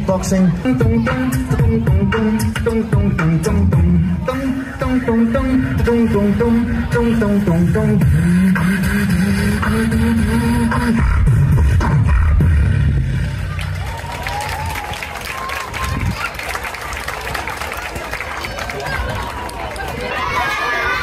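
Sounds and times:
beatboxing through speakers: 0:00.0 - 0:13.8
crowd noise: 0:00.0 - 0:21.0
people clapping: 0:13.4 - 0:21.0
children's voices: 0:15.3 - 0:21.0.

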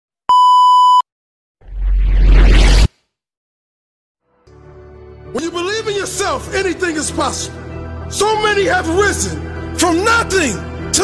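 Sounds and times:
high test-tone beep: 0:00.3 - 0:01.0.

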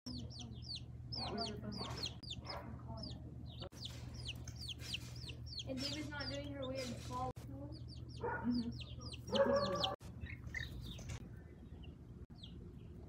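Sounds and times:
chicks peeping: 0:00.1 - 0:13.0
low steady hum: 0:00.1 - 0:13.0.

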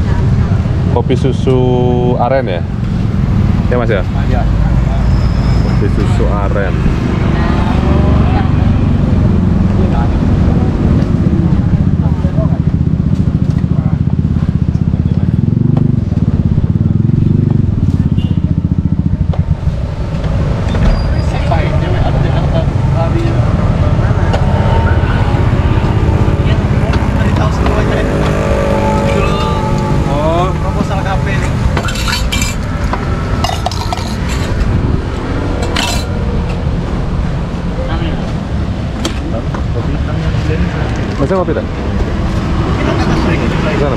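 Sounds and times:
indistinct voices talking: 0:00.0 - 0:43.9
motorcycles passing: 0:00.0 - 0:43.9
steady low traffic rumble: 0:00.0 - 0:43.9.

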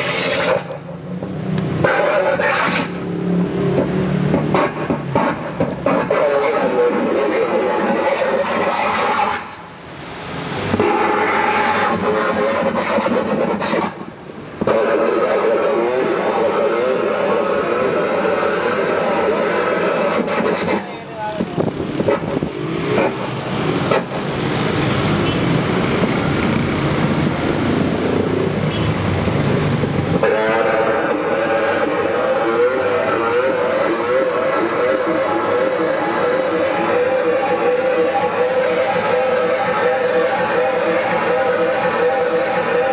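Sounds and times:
harsh noise music: 0:03.8 - 0:09.5, 0:10.7 - 0:20.9, 0:30.2 - 0:42.9
warbling pitched drone: 0:14.7 - 0:20.6, 0:30.2 - 0:42.9.

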